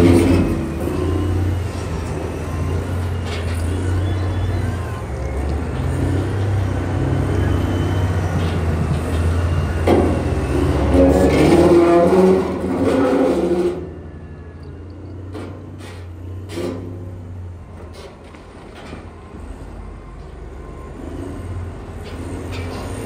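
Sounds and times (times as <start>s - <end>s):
wheel loader diesel engine rumbling: 0.0s - 23.0s.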